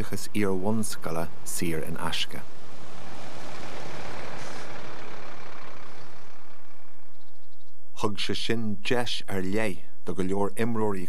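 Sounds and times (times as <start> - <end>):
coach driving past: 0.0 - 8.2
low steady hum: 0.0 - 11.0.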